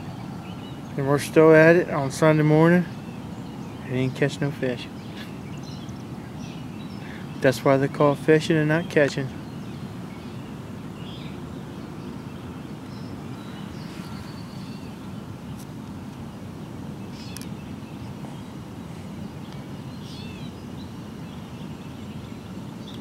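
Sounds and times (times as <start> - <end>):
distant city traffic hum: 0.0 - 23.0
short bird chirps: 17.1 - 17.5.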